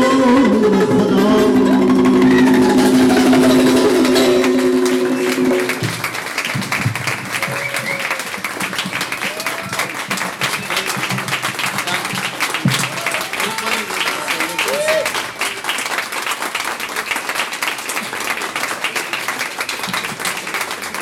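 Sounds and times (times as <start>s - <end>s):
music closing note: 0.0s - 6.2s
audience applause: 1.4s - 21.0s
audience shouts and cheers: 7.4s - 8.3s, 9.2s - 10.0s, 12.7s - 15.2s.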